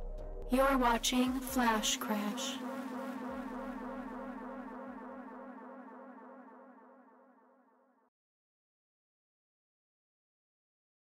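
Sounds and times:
buzzing electronic drone: 0.0s - 7.1s.

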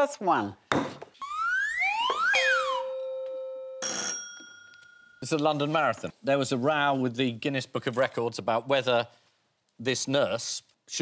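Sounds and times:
bell ringing: 2.7s - 5.3s.

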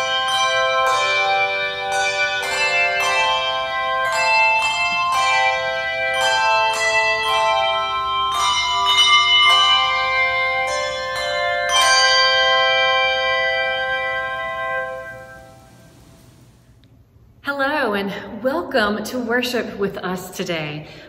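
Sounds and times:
handbell choir playing: 0.0s - 16.4s.

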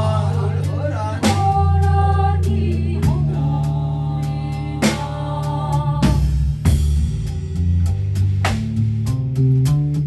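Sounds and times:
voices singing held notes: 0.0s - 6.4s
drums: 0.0s - 10.0s
electric bass line: 0.0s - 10.0s.

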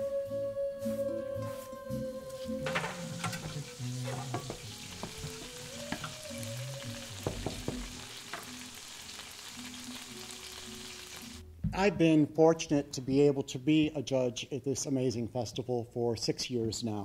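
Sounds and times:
food sizzling in a pan: 2.3s - 11.4s.

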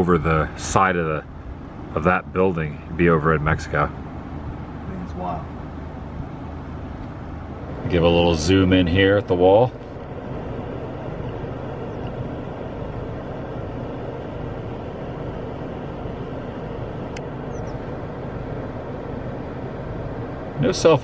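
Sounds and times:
car engine idling in cabin: 0.0s - 21.0s.

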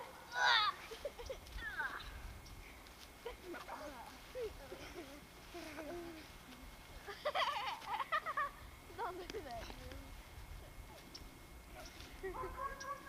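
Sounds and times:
high-pitched wavering cries: 0.0s - 2.3s
boys' voices: 3.2s - 10.2s.

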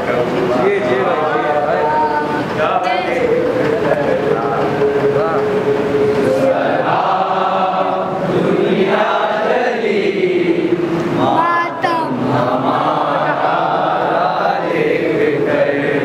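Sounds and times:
men chanting into microphone: 0.0s - 16.0s.

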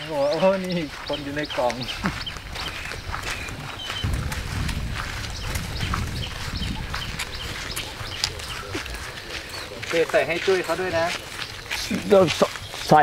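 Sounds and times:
sandals slapping on dirt path: 0.0s - 13.0s
low rumble: 3.3s - 9.4s.

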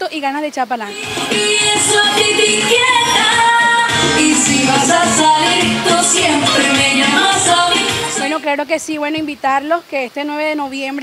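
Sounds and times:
accordion: 0.9s - 8.4s
woman singing into microphone: 0.9s - 9.4s.

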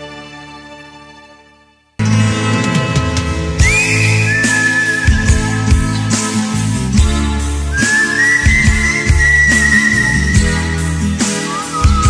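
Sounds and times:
bass: 0.0s - 12.0s
drum kit steady beat: 3.0s - 12.0s.

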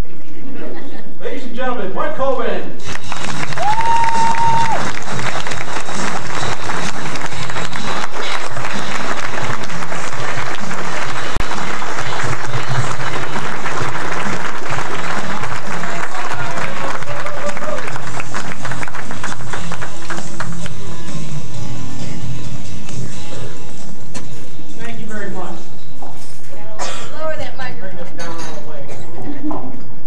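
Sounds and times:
audience applauding: 2.8s - 20.9s.

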